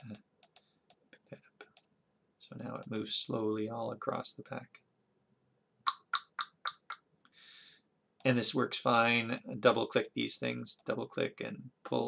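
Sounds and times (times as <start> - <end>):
sharp clicks: 0.0 - 1.9.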